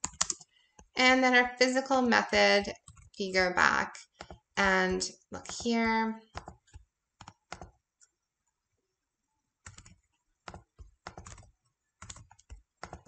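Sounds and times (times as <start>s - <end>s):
typing on a computer keyboard: 0.0s - 1.0s, 2.8s - 3.2s, 6.3s - 7.8s, 9.6s - 13.0s.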